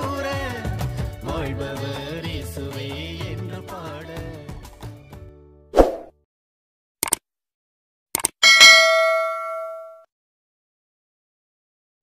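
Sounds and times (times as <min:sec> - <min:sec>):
clicks: 0:08.2 - 0:08.4
bell ding: 0:08.4 - 0:10.1.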